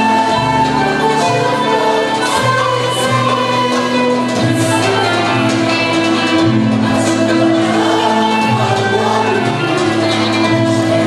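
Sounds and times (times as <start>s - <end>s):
mixed choir singing: 0.0s - 11.0s.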